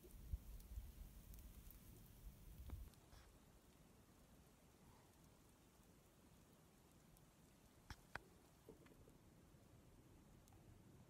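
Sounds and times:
faint clicks: 7.1s - 9.1s, 10.4s - 10.7s.

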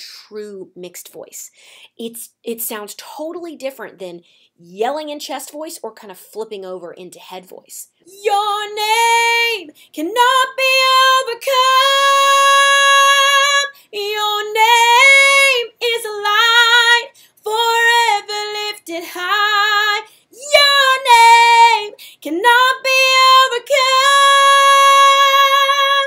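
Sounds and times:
woman breathing: 1.5s - 2.0s, 9.7s - 10.0s, 13.7s - 14.0s, 17.1s - 17.4s, 20.1s - 20.4s, 21.9s - 22.3s
woman singing unaccompanied: 8.1s - 26.0s.

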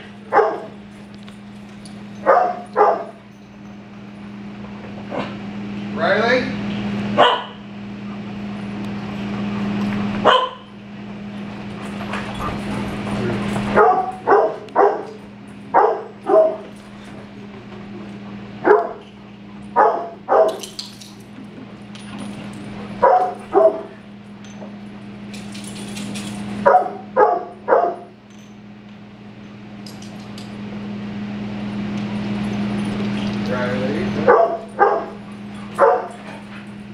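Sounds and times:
steady low hum: 0.0s - 36.9s
dog barking: 0.3s - 0.7s, 2.2s - 3.2s, 7.2s - 7.6s, 10.2s - 10.7s, 13.8s - 16.7s, 18.6s - 19.0s, 19.8s - 20.6s, 23.0s - 24.0s, 26.6s - 28.1s, 34.2s - 36.2s.

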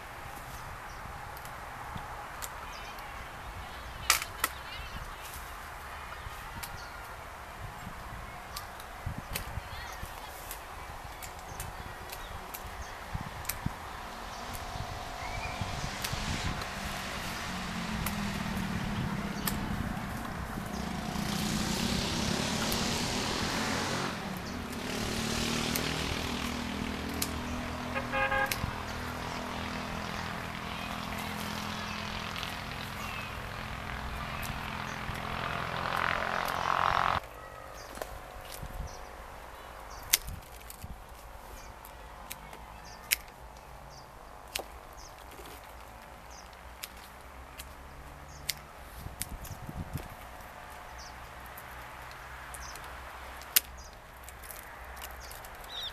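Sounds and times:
pruning shears clicking: 10.4s - 37.3s, 44.4s - 55.9s
motor engine humming: 12.3s - 37.2s
hissing rush: 13.6s - 28.1s.

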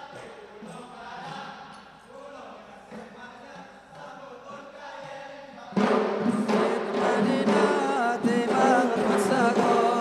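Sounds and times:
chanted vocal line: 4.0s - 10.0s
frame drums struck together: 5.0s - 10.0s.

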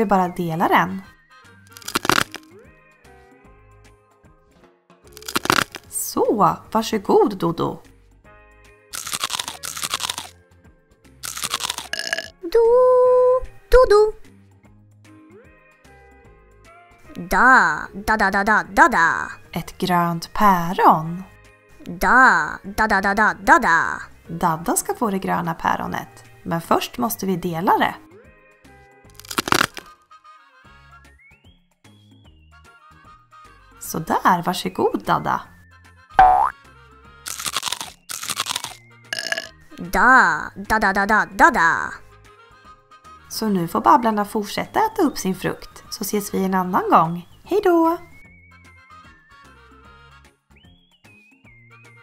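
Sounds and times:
light background music: 0.0s - 52.0s
toy knife cutting toy food: 1.7s - 2.4s, 5.2s - 5.9s, 9.0s - 10.3s, 11.2s - 12.3s, 29.1s - 29.9s, 37.3s - 39.5s
hook-and-loop ripping: 1.7s - 2.5s, 5.1s - 6.0s, 9.0s - 10.4s, 11.2s - 12.3s, 29.1s - 30.0s, 37.3s - 39.5s.

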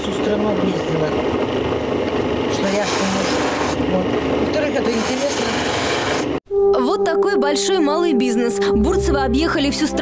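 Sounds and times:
stone grinding on spinning wheel: 2.5s - 6.3s
music: 6.5s - 10.0s
woman's voice: 6.7s - 10.0s.

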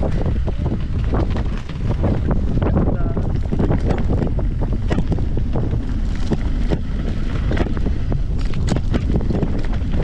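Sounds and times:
bike clicks and rattles: 0.0s - 10.0s
wind buffeting microphone: 0.0s - 10.0s.

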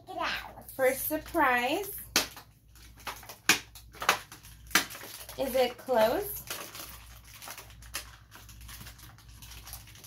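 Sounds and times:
packaging crinkling: 2.2s - 10.0s.

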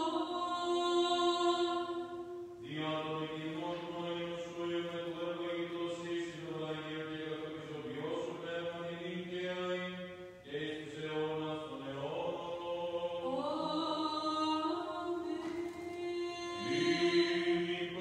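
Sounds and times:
man chanting unaccompanied: 2.6s - 13.2s, 16.6s - 18.0s.

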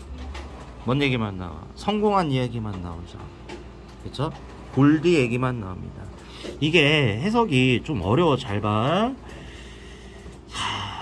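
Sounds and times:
faint room hum: 0.0s - 11.0s
man breathing in: 9.3s - 11.0s.

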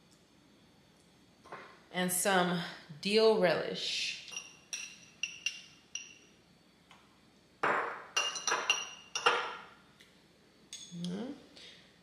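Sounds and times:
metal spoon clinking on glass: 4.3s - 6.3s, 8.2s - 9.6s.

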